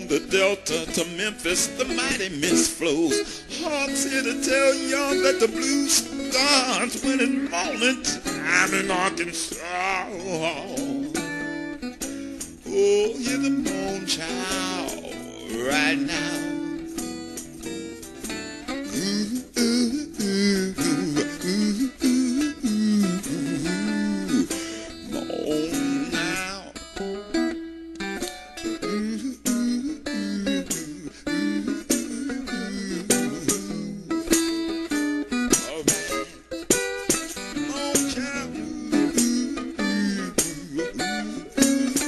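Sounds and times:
blues guitar bending notes: 0.0s - 42.0s.

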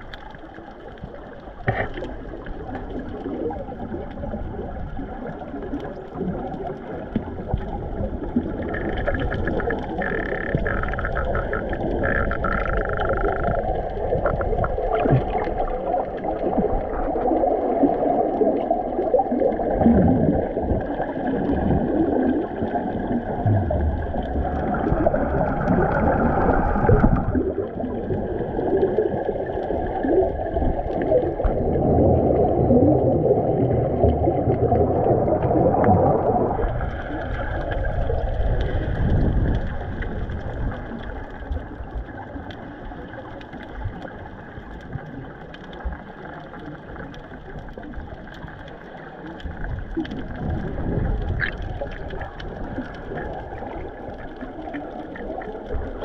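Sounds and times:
underwater crackling and bubbling: 0.0s - 56.0s
underwater water rush: 0.0s - 56.0s.

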